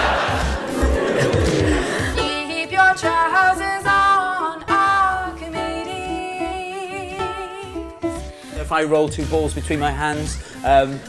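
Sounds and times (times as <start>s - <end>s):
woman singing: 2.0s - 8.3s
ukulele strumming: 2.2s - 8.3s.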